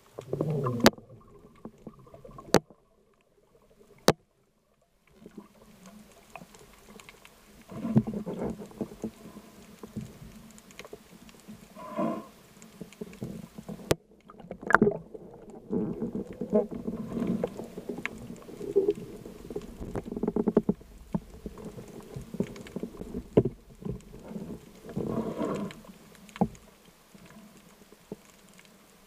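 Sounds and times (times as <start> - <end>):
low underwater rumble: 0.0 - 27.5
faint ticks: 1.6 - 29.0.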